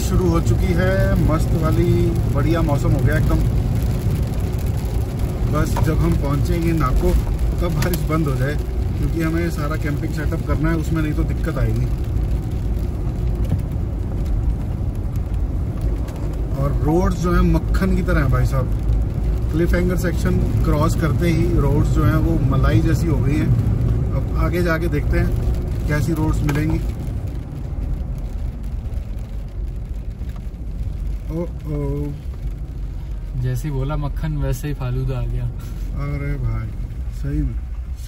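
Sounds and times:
vehicle rumble on wet road: 0.0s - 38.0s.

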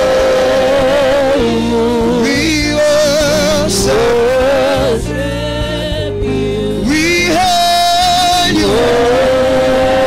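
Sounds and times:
man singing into microphone: 0.0s - 5.9s, 6.7s - 10.0s.

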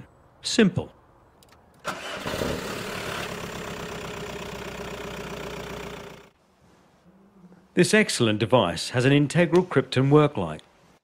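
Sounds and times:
car engine starting and idling: 1.4s - 6.4s.

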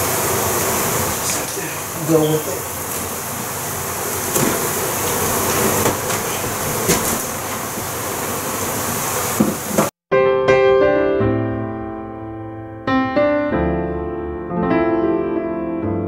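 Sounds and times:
board knocking and scraping: 9.4s - 10.0s
solo piano music: 10.1s - 16.0s.

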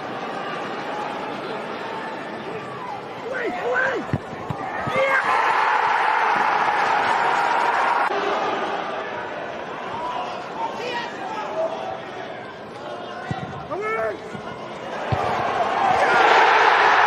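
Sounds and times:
crowd noise: 0.0s - 17.0s
people shouting: 3.4s - 8.1s, 14.9s - 17.0s
ball thuds: 4.1s - 4.6s.

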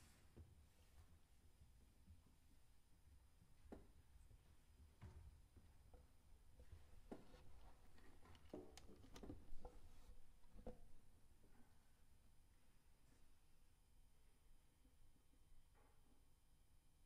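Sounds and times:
small clicks and taps: 7.1s - 9.8s.

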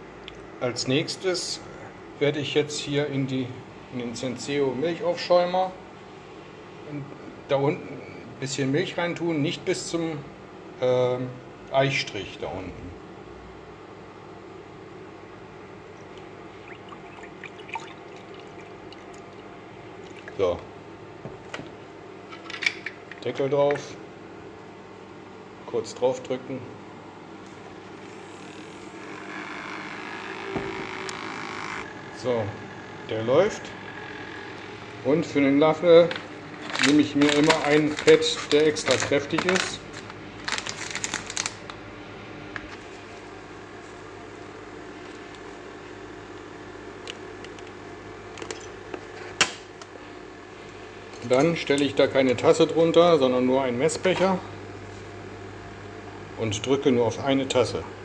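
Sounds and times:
milk frother humming: 16.1s - 20.4s, 27.8s - 35.0s
foil bag crinkling: 36.6s - 41.8s.

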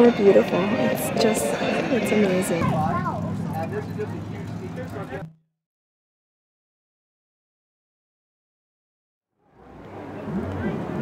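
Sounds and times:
people talking: 0.0s - 5.3s, 9.6s - 11.0s.

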